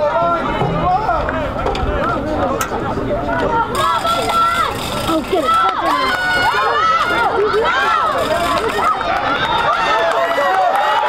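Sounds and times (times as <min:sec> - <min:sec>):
young voices shouting: 0:00.0 - 0:11.0.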